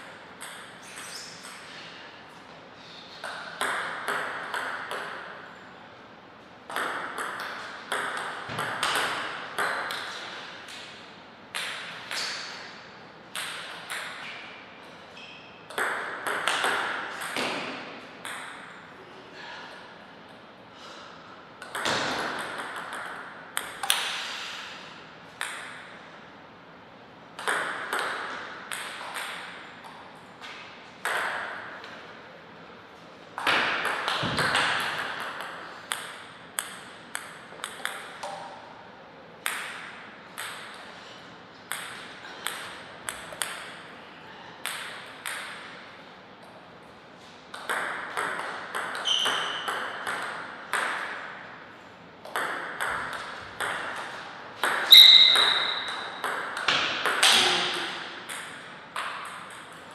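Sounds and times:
ping pong ball clicking: 0.4 - 0.8, 3.2 - 5.2, 6.7 - 10.1, 13.3 - 14.3, 15.7 - 17.5, 18.2 - 18.7, 21.6 - 24.1, 25.4 - 25.8, 27.4 - 30.0, 33.4 - 38.5, 39.4 - 40.8, 41.7 - 43.7, 44.6 - 45.6, 47.5 - 51.2, 52.2 - 59.8.

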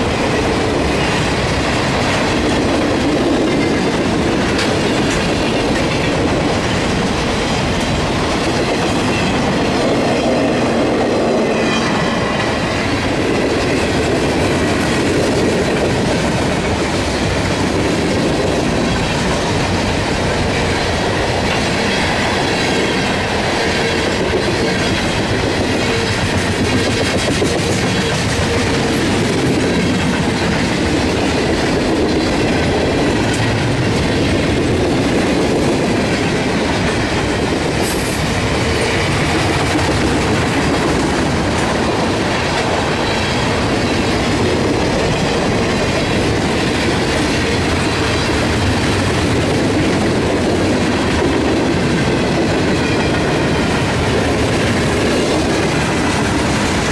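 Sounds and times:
train wheels rumbling on rails: 0.0 - 56.9.

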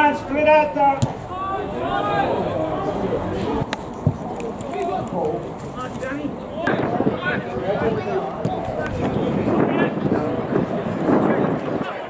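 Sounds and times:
football players calling out: 0.0 - 10.8
outdoor background noise: 0.0 - 12.0.

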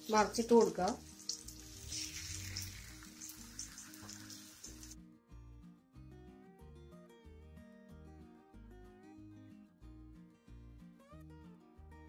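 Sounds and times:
banana slices sizzling in a pan: 0.0 - 5.0.

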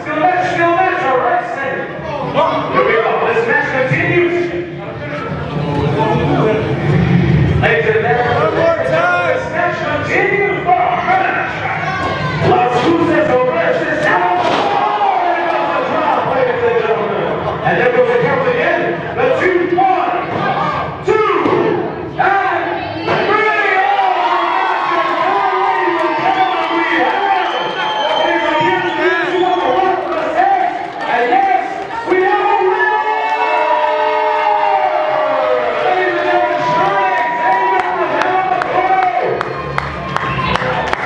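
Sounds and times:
crowd cheering and shouting: 5.1 - 41.0.

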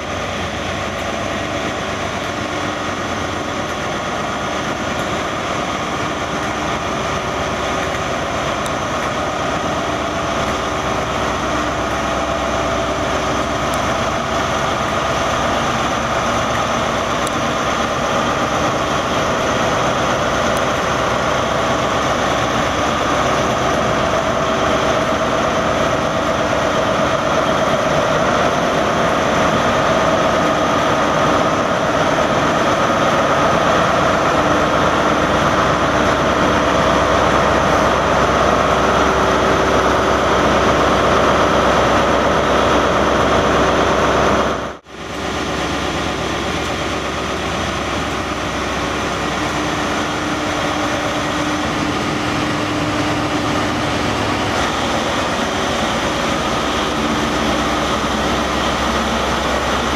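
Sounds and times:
train diesel engine running: 0.0 - 59.9.

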